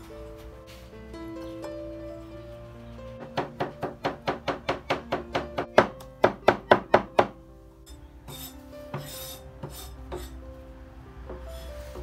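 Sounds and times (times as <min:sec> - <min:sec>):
cleaver scraping wooden board: 0:08.3 - 0:10.4.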